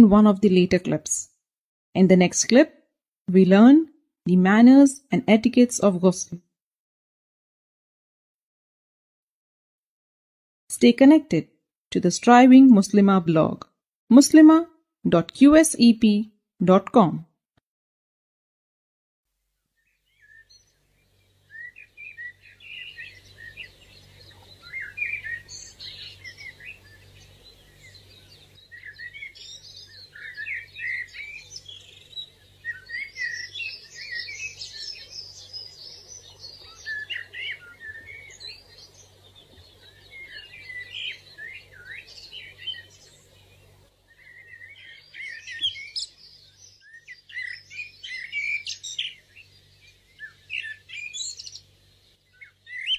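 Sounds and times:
small birds chirping: 19.8 - 52.9.

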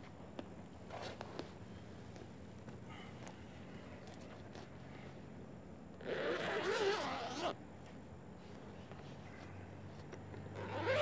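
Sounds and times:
steady low hum: 0.0 - 11.0
zipper being drawn open: 6.0 - 7.6, 10.6 - 11.0.

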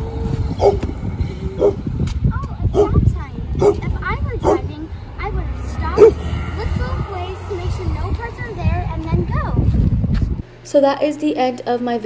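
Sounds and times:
steady low rumble: 0.0 - 11.2.

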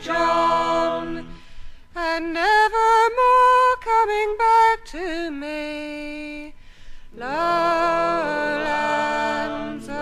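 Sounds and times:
woman singing folk song: 0.0 - 10.0
breath: 1.3 - 1.9, 6.6 - 7.2.

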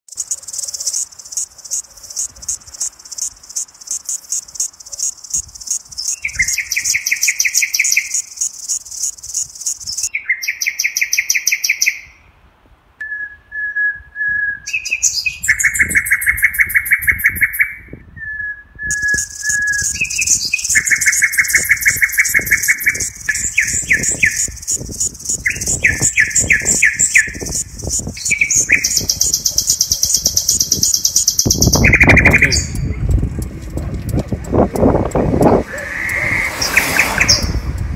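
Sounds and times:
lower trilled bird phrases: 0.1 - 12.2, 14.7 - 33.5
songbirds chirping: 0.1 - 12.3, 14.7 - 18.0, 18.9 - 37.6.

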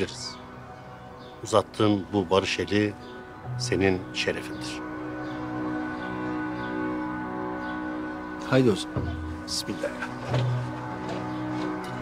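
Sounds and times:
sustained held chord: 0.0 - 12.0.

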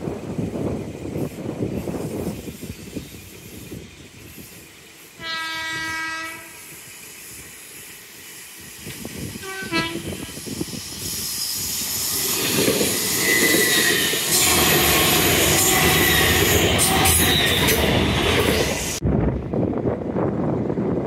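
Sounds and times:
train horn blasts: 5.2 - 6.7, 9.4 - 10.2
gusty low rumble: 18.8 - 21.0.

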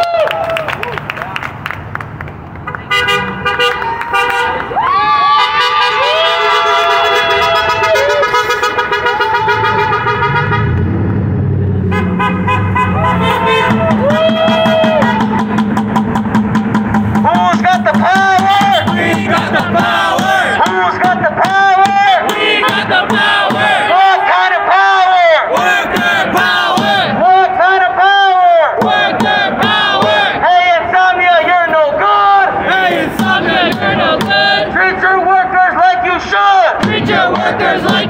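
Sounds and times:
passing traffic: 0.0 - 38.0
horns blasting: 2.7 - 11.0, 11.8 - 38.0
low rumble: 9.4 - 20.6
protesters chanting: 17.2 - 38.0.

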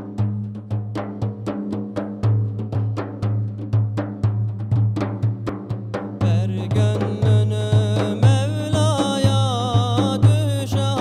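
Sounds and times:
frame drums playing: 0.0 - 11.0.

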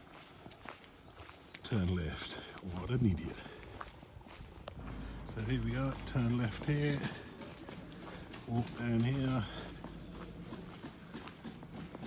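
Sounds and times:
footsteps on tarmac: 0.0 - 12.0.

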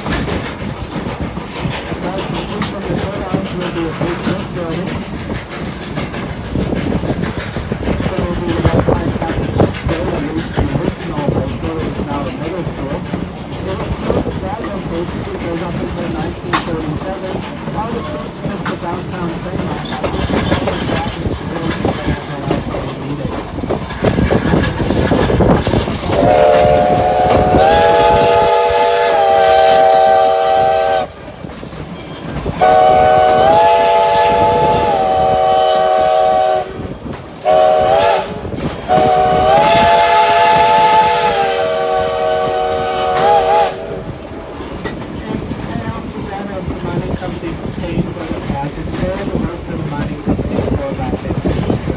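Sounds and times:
train wheels on rails: 0.0 - 51.9
steam whistle blasts: 26.2 - 31.1, 32.6 - 36.8, 37.4 - 43.8.

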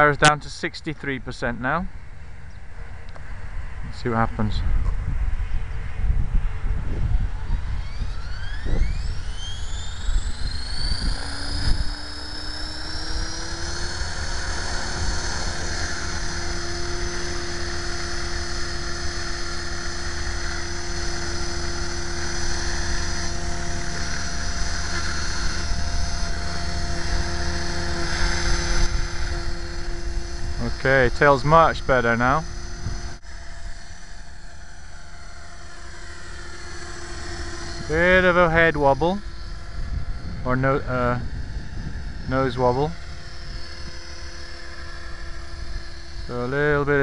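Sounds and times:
rc helicopter motor and rotor whine: 0.0 - 47.0.

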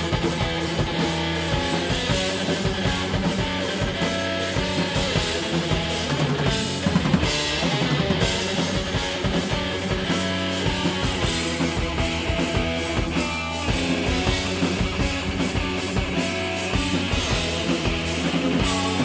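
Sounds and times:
bass guitar: 0.0 - 19.0
distorted electric guitar: 0.0 - 19.0
drum kit beat: 0.0 - 19.0.

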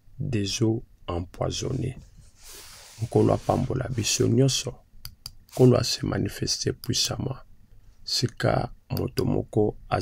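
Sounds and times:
man speaking: 0.2 - 2.0, 3.0 - 4.8, 5.5 - 7.4, 8.1 - 10.0.

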